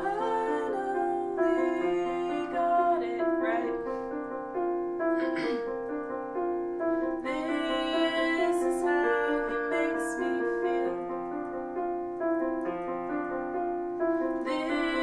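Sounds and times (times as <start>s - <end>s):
woman singing: 0.0s - 3.8s, 7.2s - 11.1s, 14.3s - 15.0s
piano playing held chords: 0.0s - 15.0s.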